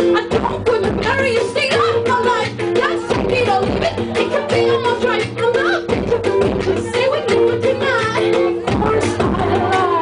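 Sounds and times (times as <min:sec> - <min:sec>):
steady drum beat: 0:00.0 - 0:10.0
woman singing into microphone: 0:00.0 - 0:10.0.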